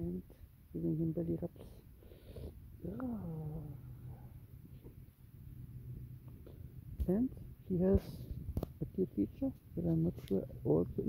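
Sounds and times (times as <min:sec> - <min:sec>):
man cooing or humming: 0:02.8 - 0:03.9.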